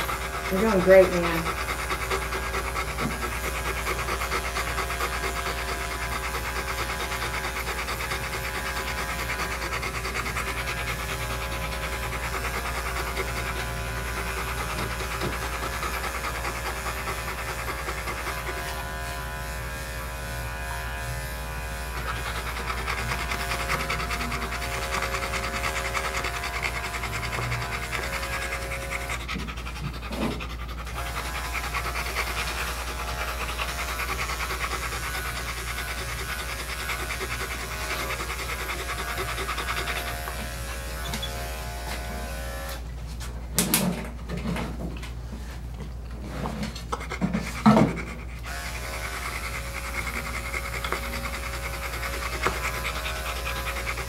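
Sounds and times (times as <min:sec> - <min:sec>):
dog panting: 0:00.0 - 0:42.8, 0:45.2 - 0:54.0
electric dog clippers running: 0:00.0 - 0:44.0, 0:46.9 - 0:54.0.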